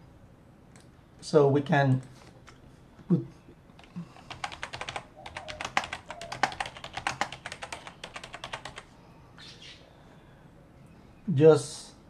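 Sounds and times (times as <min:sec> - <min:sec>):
computer keyboard typing: 0:03.8 - 0:08.9.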